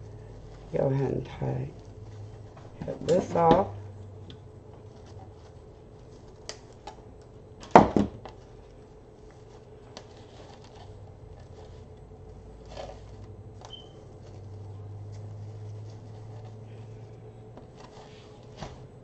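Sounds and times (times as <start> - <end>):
mesh and ribbon crinkling: 0.0 - 3.5, 4.7 - 7.3, 8.3 - 19.0
steady low hum: 0.0 - 19.0.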